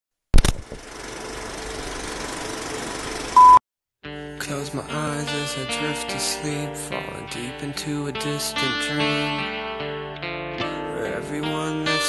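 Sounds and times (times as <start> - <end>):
projector whirring rattle: 0.4 - 3.4
high beep: 3.4 - 3.6.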